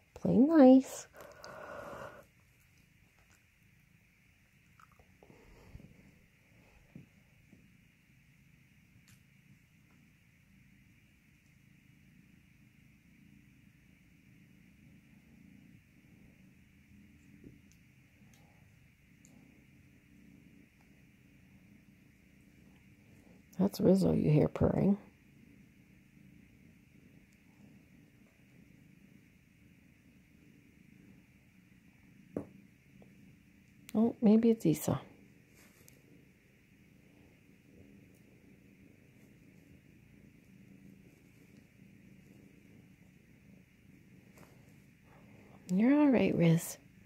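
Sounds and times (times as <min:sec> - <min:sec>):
kittens purring: 0:00.0 - 0:47.0.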